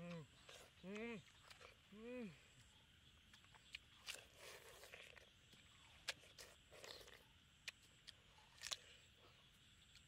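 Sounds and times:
chewing watermelon crunching: 0:00.0 - 0:10.0.

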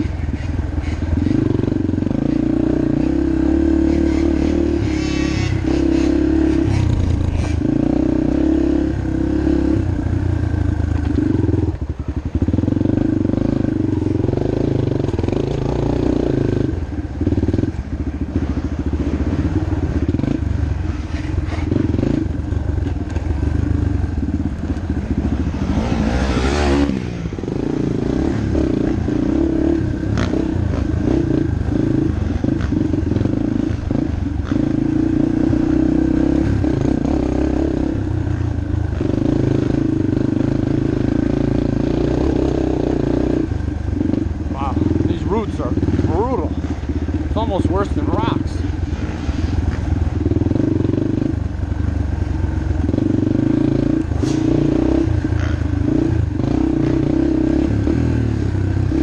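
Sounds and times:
dirt bike engine revving: 0:00.0 - 0:10.0, 0:24.9 - 0:51.6, 0:52.2 - 0:59.0.

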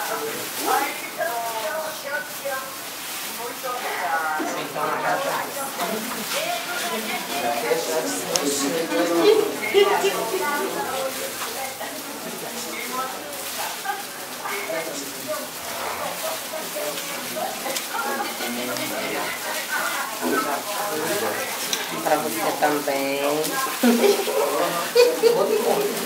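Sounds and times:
plastic wrappers crinkling: 0:00.0 - 0:26.0
women chattering: 0:00.0 - 0:26.0.

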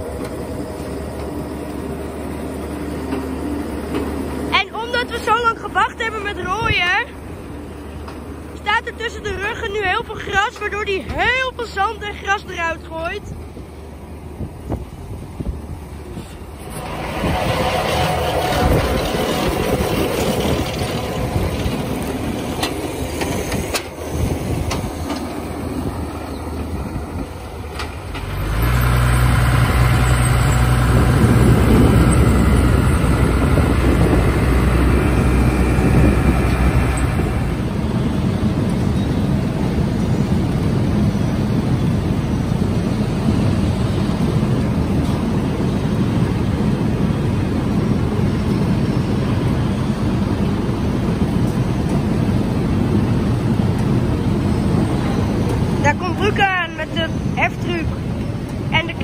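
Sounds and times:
tractor engine drone: 0:00.0 - 0:59.0
machinery rattle: 0:16.2 - 0:37.8.

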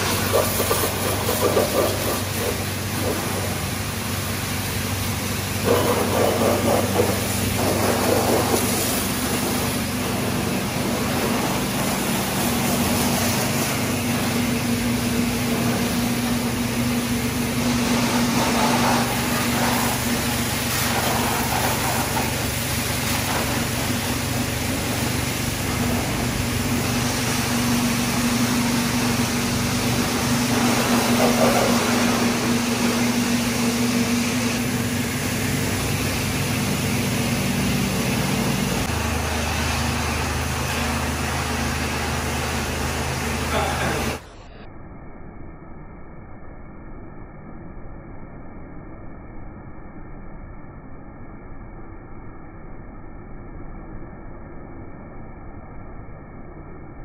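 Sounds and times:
water jet spraying hiss: 0:00.0 - 0:44.2
pressure washer humming: 0:00.0 - 0:44.6
deeper hum: 0:00.0 - 0:57.0.

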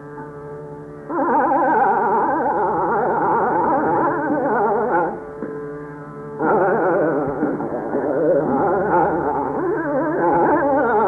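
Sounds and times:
steady string drone: 0:00.0 - 0:11.0.

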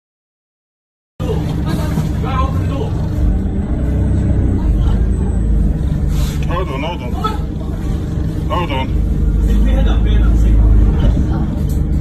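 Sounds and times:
people talking: 0:01.2 - 0:03.2, 0:04.4 - 0:05.6, 0:06.4 - 0:11.8
engine idling: 0:01.2 - 0:12.0.

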